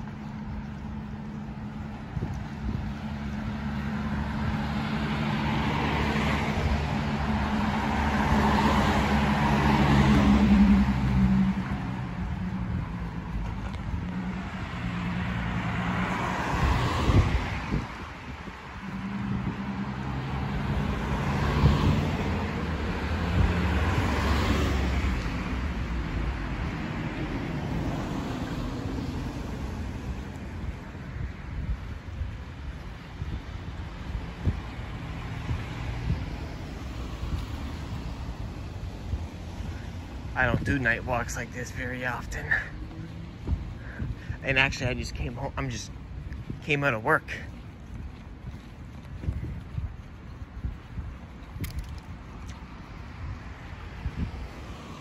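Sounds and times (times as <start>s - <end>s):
cars passing by: 0.0s - 55.0s
low engine hum: 18.8s - 55.0s.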